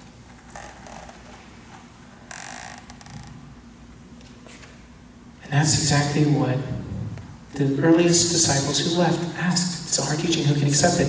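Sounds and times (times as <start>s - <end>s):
microphone noise hiss: 3.1s - 11.0s.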